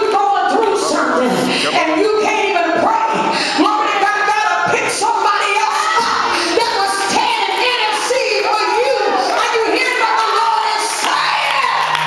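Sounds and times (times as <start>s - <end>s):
voices shouting and singing: 0.0s - 12.0s.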